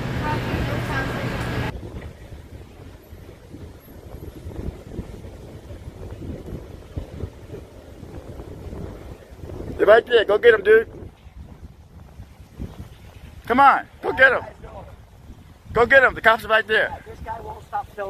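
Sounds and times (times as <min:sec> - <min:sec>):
steady low hum: 0:00.0 - 0:09.8
wind buffeting a microphone: 0:00.0 - 0:18.0
man's voice: 0:13.5 - 0:14.9.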